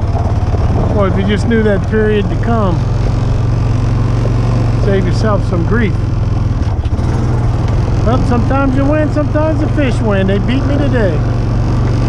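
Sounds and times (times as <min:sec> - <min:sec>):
outboard motor running: 0:00.0 - 0:12.0.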